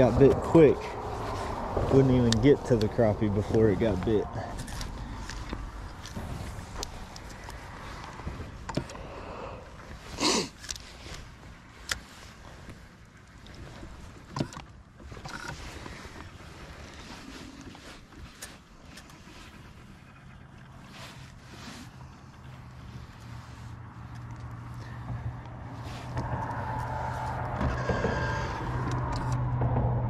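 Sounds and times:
water around a boat: 0.0 - 28.0
wind: 0.0 - 30.0.

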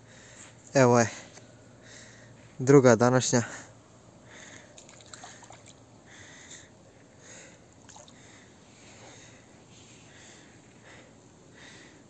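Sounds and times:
soft breathing: 0.0 - 2.6, 3.4 - 12.0.

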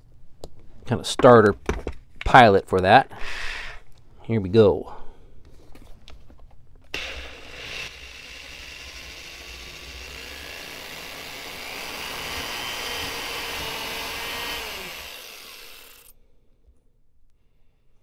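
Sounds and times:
power drill boring into plywood: 6.9 - 16.1.

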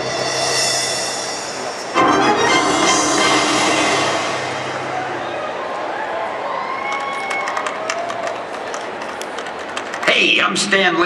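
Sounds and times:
action sound effects over loudspeakers: 1.8 - 5.9.

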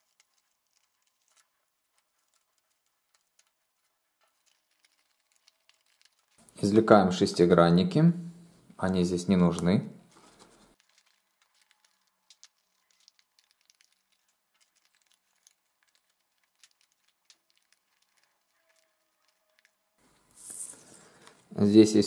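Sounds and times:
thin cardboard clicks and crinkles: 0.0 - 6.4, 10.2 - 19.8.

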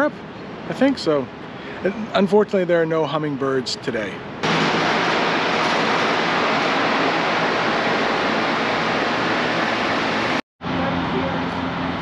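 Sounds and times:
steady rushing noise: 4.4 - 12.0.

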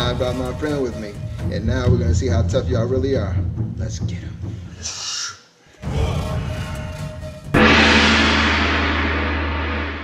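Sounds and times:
noisy musical lead-in: 5.9 - 10.0
gong ringing: 7.5 - 10.0.

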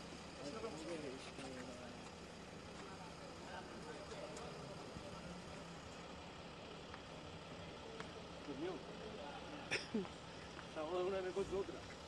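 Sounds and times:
faint distant voices: 0.0 - 12.0
low traffic hum: 0.0 - 12.0.

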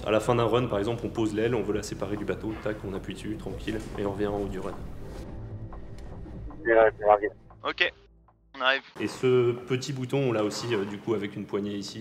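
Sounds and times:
man speaking: 6.6 - 7.9.

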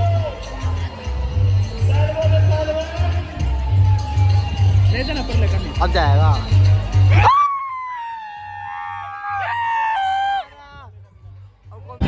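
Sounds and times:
people yelling a high-pitched cry: 7.1 - 10.7.

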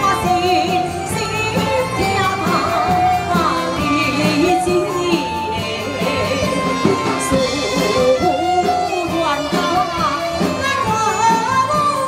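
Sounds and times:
instrumental accompaniment: 0.0 - 12.0
woman singing into microphone: 0.0 - 12.0.

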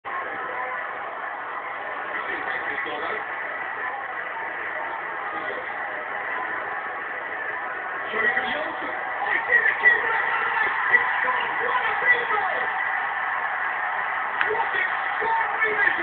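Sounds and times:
stadium crowd din: 0.0 - 16.0.

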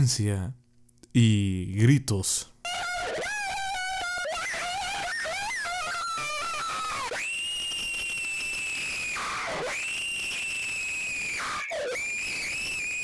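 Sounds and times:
high-pitched cartoon shriek: 2.6 - 13.0.

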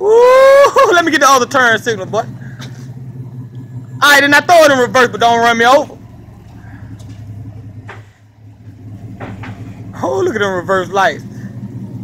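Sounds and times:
pickup truck engine idling: 0.0 - 12.0.

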